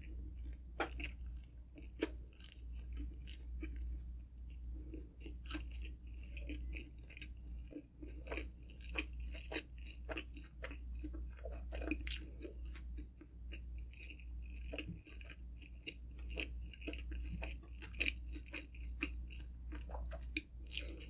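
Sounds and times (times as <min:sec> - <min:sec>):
chewing with wet smacks and crunches: 0:00.0 - 0:21.0.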